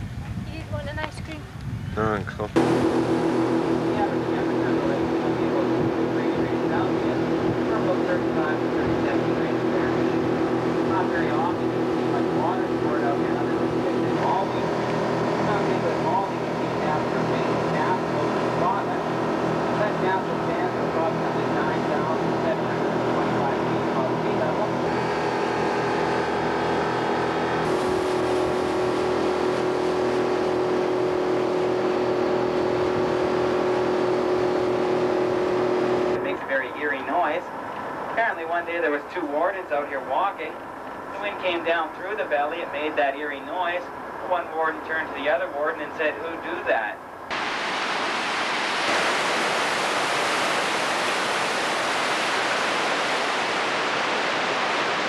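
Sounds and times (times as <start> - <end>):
boat motor running: 2.4 - 55.0
water rushing in wake: 2.6 - 45.1, 47.2 - 55.0.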